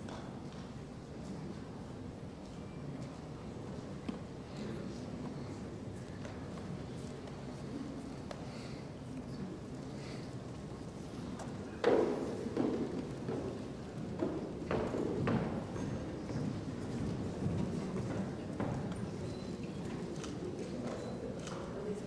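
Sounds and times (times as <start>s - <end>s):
low room murmur: 0.0s - 22.0s.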